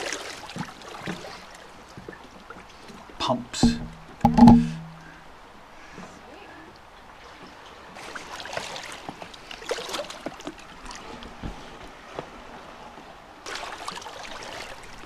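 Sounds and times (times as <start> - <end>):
seawater splashing from wading: 13.4 - 15.0.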